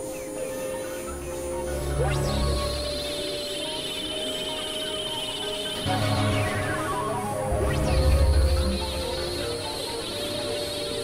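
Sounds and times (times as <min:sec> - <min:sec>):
high pulsing synthesizer tone: 0:00.5 - 0:11.0
low bass drone: 0:05.9 - 0:09.7.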